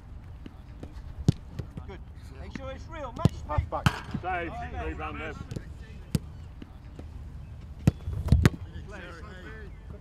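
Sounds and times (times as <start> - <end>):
football kick thuds: 7.8 - 8.6.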